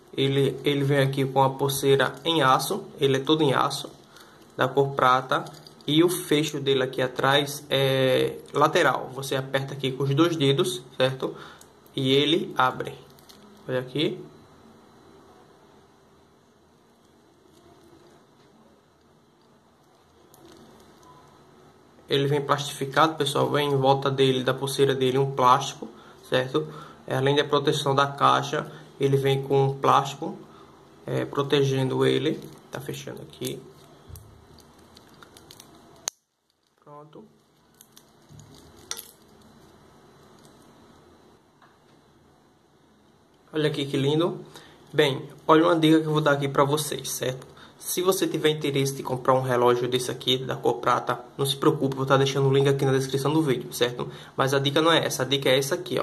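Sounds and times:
watch bracelet links clinking: 0:05.4 - 0:05.9, 0:37.7 - 0:39.5
watch bracelet handling noise: 0:33.4 - 0:36.8, 0:37.4 - 0:40.7.

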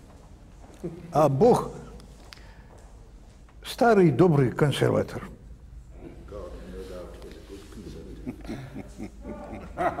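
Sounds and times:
men laughing: 0:07.8 - 0:10.0.

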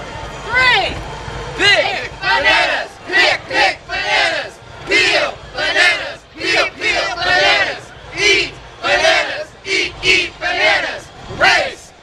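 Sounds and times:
group shouting a cheer: 0:01.7 - 0:11.9.

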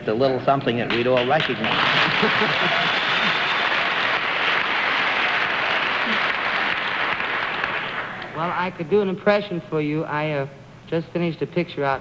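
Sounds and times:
audience applauding: 0:00.9 - 0:08.4.

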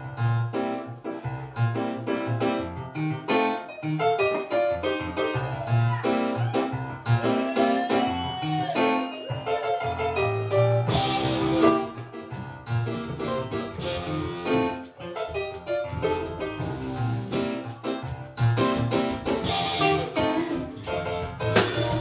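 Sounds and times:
live band playing: 0:03.3 - 0:22.0.

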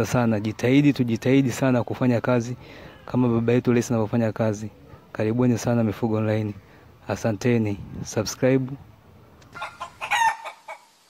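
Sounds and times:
rooster crowing: 0:09.5 - 0:11.0.

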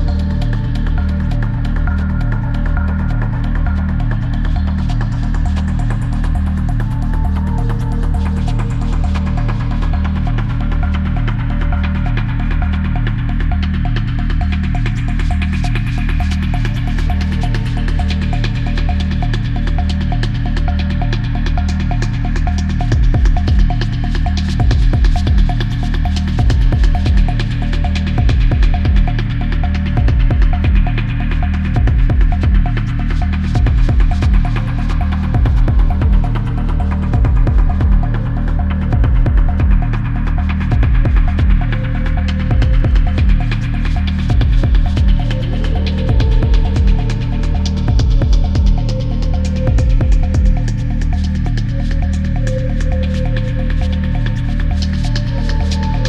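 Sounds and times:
dense techno percussion: 0:00.0 - 0:56.0
throbbing bass pulse: 0:00.0 - 0:56.0.

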